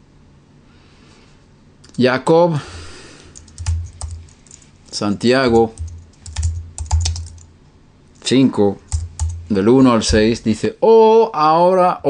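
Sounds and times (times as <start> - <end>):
low thumps: 9.0 - 10.5.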